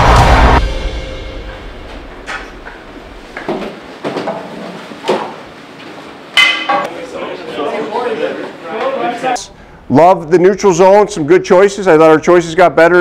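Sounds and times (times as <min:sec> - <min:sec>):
men talking: 0:06.8 - 0:13.0.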